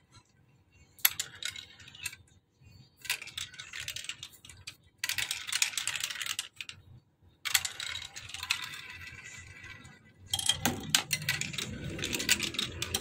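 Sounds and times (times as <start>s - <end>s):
plastic balls clattering down marble run: 1.0s - 2.2s, 3.0s - 6.8s, 7.4s - 13.0s.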